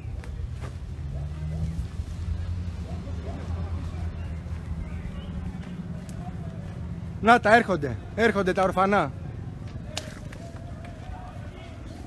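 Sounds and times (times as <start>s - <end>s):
distant shouting voices: 0.0s - 12.0s.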